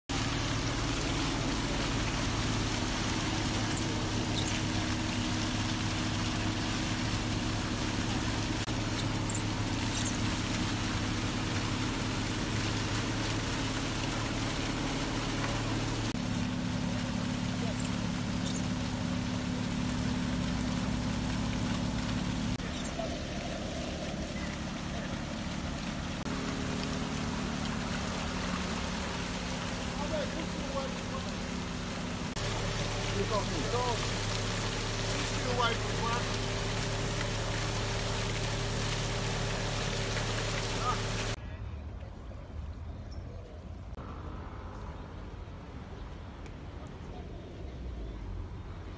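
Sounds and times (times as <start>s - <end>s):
car engine idling: 0.0s - 41.4s
water trickling and lapping: 0.0s - 41.4s.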